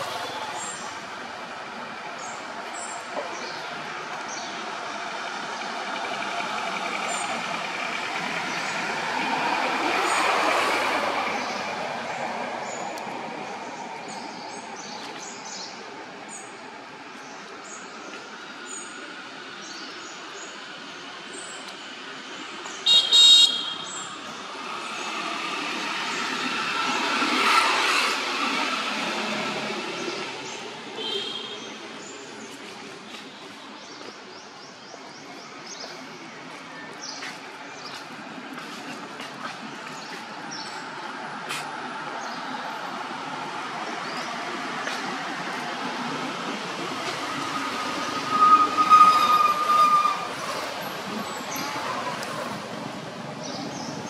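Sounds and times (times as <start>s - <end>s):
vehicle horn toot: 22.8s - 23.9s.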